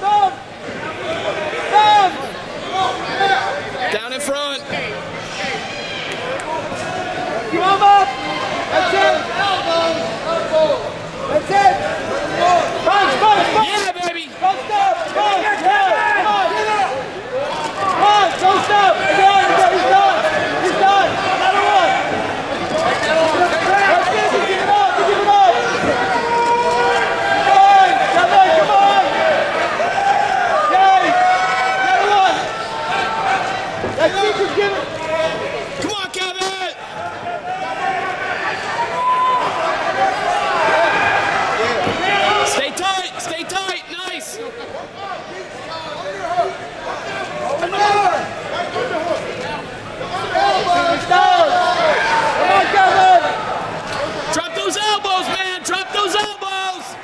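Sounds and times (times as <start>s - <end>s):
crowd shouting and cheering: 0.0s - 57.0s.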